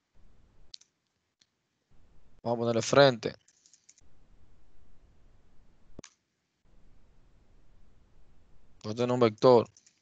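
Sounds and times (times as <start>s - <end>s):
computer keyboard keystrokes: 9.6s - 10.0s.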